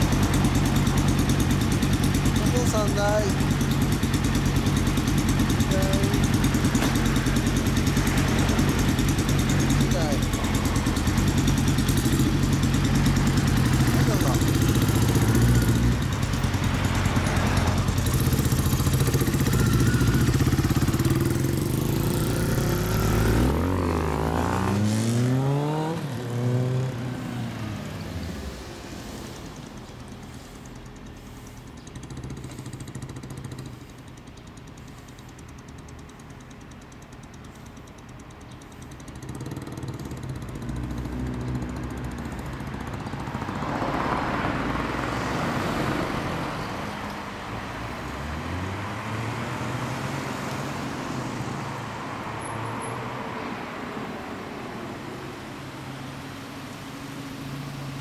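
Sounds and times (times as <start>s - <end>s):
motorcycle engines idling: 0.0s - 24.9s, 25.5s - 52.0s
motorcycles revving and accelerating: 0.0s - 30.8s, 31.9s - 33.8s, 39.0s - 58.0s.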